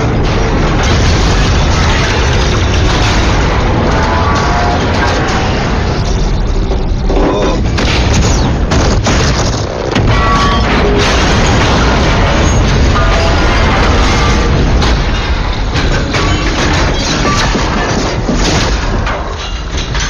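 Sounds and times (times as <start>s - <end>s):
explosions and booms: 0.0s - 20.0s.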